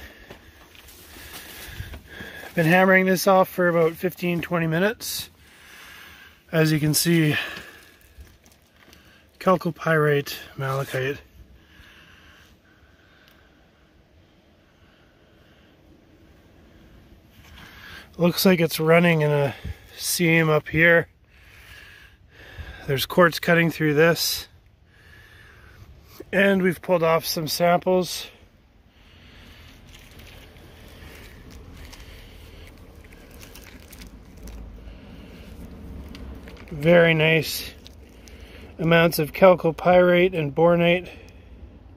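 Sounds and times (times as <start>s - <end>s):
faint rustling and handling: 0.0s - 11.2s, 29.0s - 39.4s
faint outdoor air hiss: 0.0s - 41.9s
steady low rumble: 0.0s - 41.9s.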